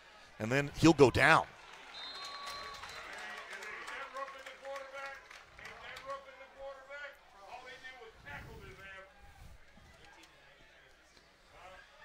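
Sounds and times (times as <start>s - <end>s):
distant voices in stadium: 0.0s - 12.0s.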